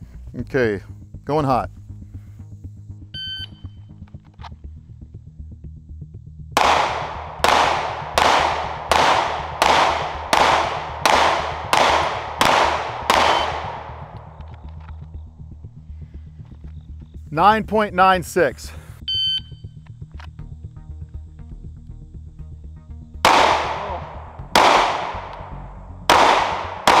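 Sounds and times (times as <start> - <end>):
shot timer beep: 3.2 - 3.7, 19.1 - 19.7
pistol shots with echo: 6.6 - 14.8, 23.2 - 27.0.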